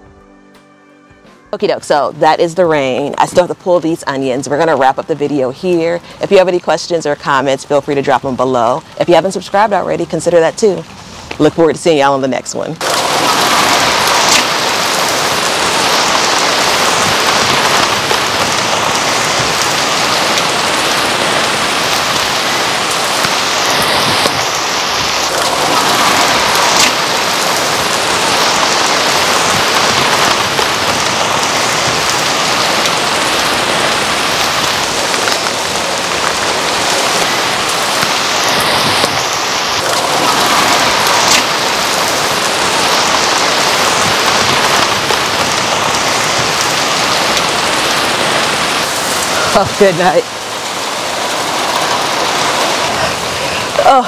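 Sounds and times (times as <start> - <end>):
steady rain falling: 1.6 - 11.8, 12.4 - 54.0.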